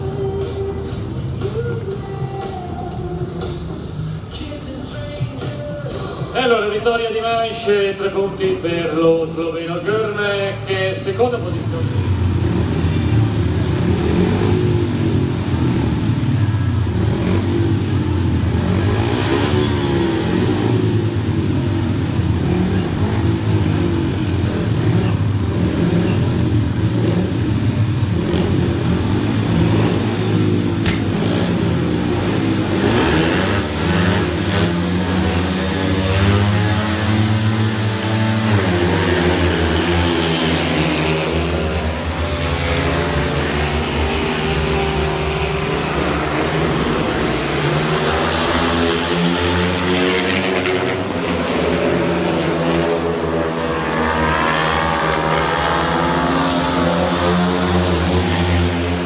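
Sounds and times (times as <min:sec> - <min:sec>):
motorcycle engines revving: 0:00.0 - 0:59.0.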